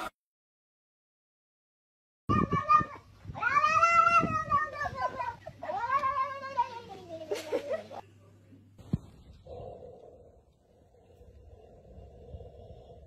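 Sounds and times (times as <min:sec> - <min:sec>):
cat yowling: 0:02.3 - 0:06.7.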